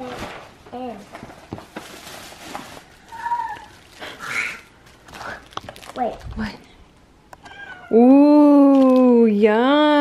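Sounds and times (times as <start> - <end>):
paper gift bag rustling: 0.0 - 6.7.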